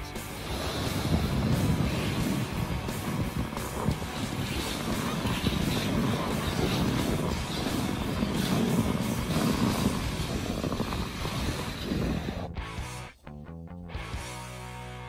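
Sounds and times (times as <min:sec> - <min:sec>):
sled sliding over snow: 0:00.2 - 0:12.5
wind buffeting microphone: 0:00.2 - 0:12.6.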